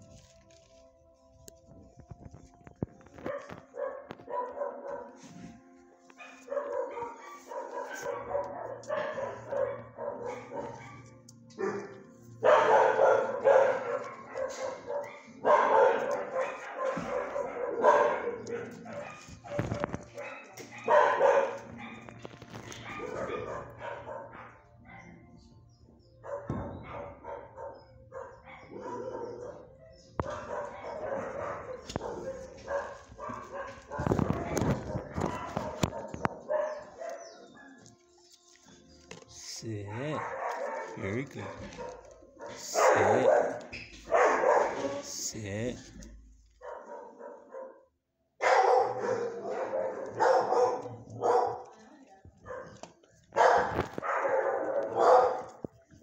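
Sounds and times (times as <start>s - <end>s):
dogs barking: 3.2s - 56.0s.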